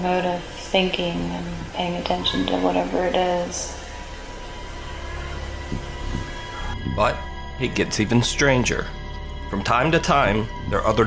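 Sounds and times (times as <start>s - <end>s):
even hiss: 0.0s - 8.8s
low hum: 0.0s - 11.0s.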